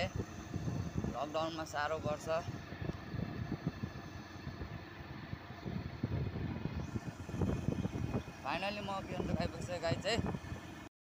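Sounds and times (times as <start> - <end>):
motorcycle engine and road noise: 0.0 - 10.9
wind rumble on microphone: 0.0 - 10.9.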